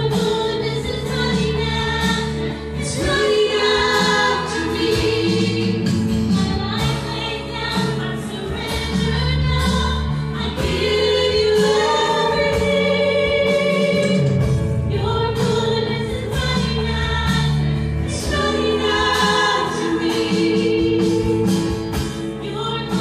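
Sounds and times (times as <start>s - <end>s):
acoustic guitar: 0.0s - 23.0s
bass guitar: 0.0s - 23.0s
drums with steady beat: 0.0s - 23.0s
voices singing together: 0.0s - 23.0s.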